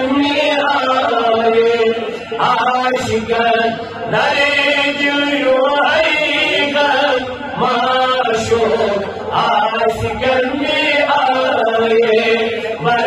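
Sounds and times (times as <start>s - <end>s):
man singing devotional chant: 0.0s - 13.0s.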